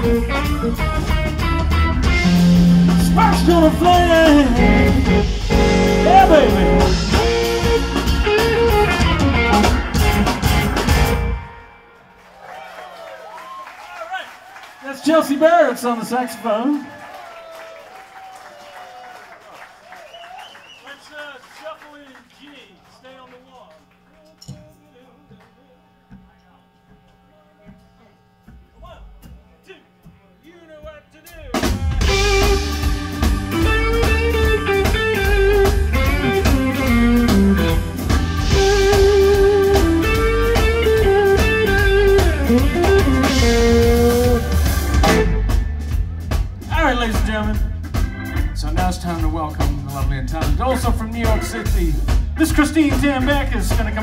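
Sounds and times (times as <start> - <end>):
held guitar notes: 0.0 - 12.2, 25.3 - 54.0
blues band playing loudly: 0.0 - 12.3, 31.4 - 54.0.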